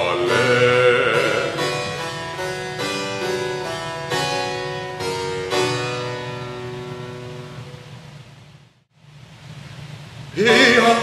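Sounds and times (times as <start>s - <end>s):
harpsichord chord ringing: 0.0s - 8.0s, 10.4s - 11.0s.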